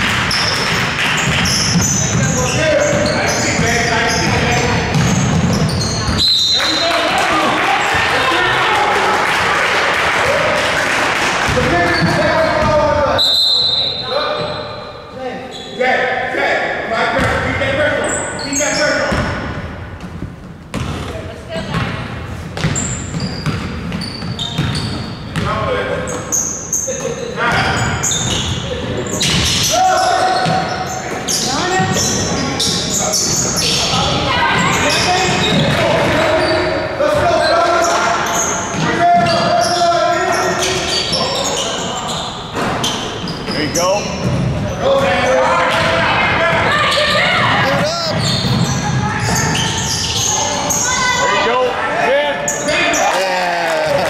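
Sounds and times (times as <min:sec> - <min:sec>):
basketball bouncing on hardwood: 0:00.6 - 0:06.2, 0:19.1 - 0:22.0, 0:22.6 - 0:25.5
players and spectators shouting: 0:06.5 - 0:10.7, 0:29.6 - 0:30.8, 0:44.9 - 0:54.0.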